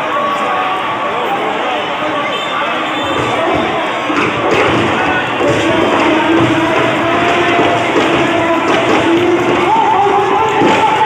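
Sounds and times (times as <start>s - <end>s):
crowd talking and cheering: 0.0s - 11.0s
dull thumps: 3.2s - 11.0s.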